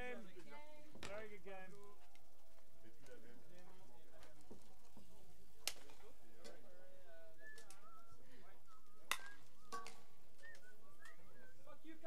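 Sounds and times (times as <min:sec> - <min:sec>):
distant chatter and calls: 0:00.0 - 0:12.0.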